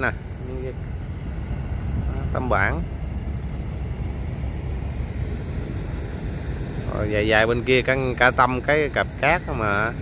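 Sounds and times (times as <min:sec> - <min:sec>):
boat engine running: 0:00.0 - 0:10.0.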